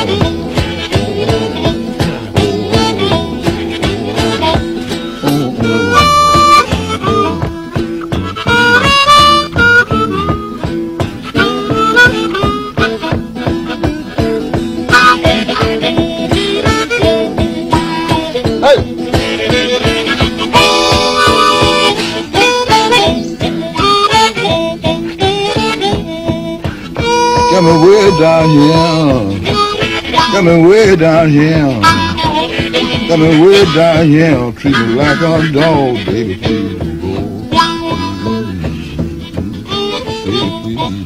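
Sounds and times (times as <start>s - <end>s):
blues harmonica solo: 0.0s - 41.0s
guitar rhythm: 0.0s - 41.0s.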